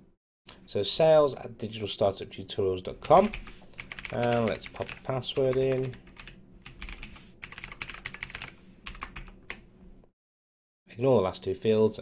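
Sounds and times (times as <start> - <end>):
computer keyboard typing: 3.2 - 9.6.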